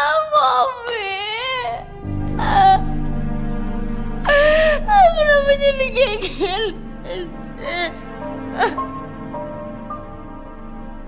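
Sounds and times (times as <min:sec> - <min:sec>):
woman sobbing and wailing: 0:04.3 - 0:08.8.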